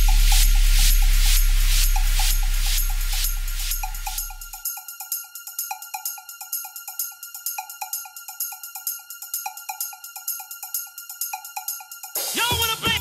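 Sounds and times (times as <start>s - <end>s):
fast hi-hat ticks: 0.0s - 12.4s.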